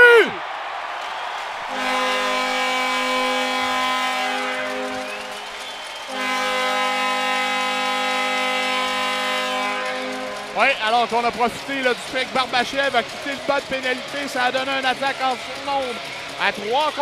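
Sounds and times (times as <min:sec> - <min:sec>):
crowd cheering: 0:00.0 - 0:17.0
arena goal horn blasts: 0:01.6 - 0:05.4, 0:06.0 - 0:11.4.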